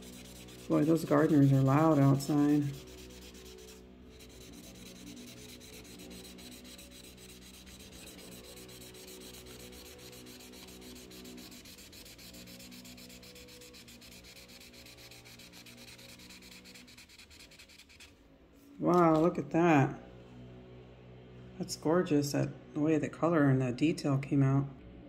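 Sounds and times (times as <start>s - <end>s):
marker rubbing on paper: 0.0s - 18.1s, 18.9s - 19.4s
faint engine drone: 19.4s - 25.0s.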